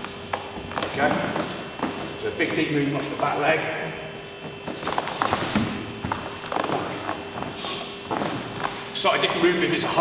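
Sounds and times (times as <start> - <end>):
bare feet on foam mats: 0.0 - 2.2, 4.2 - 8.9.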